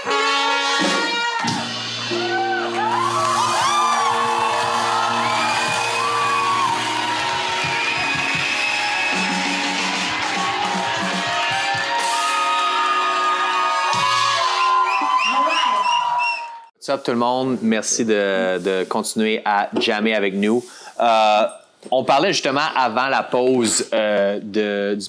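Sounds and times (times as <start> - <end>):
live band with horns: 0.0 - 13.5
crowd whooping and shouting: 1.2 - 16.7.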